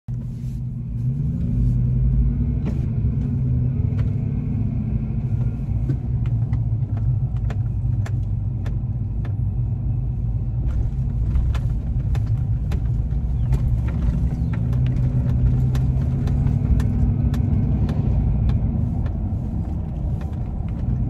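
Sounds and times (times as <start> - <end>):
car engine idling: 0.1 - 21.0.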